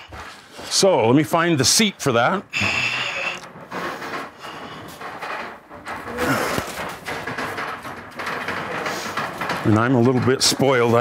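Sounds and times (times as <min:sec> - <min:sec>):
wooden pieces knocking together: 0:03.4 - 0:11.0.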